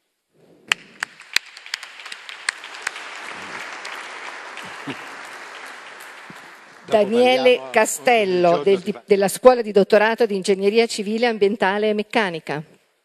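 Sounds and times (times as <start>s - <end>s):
audience applauding: 0.7s - 8.9s.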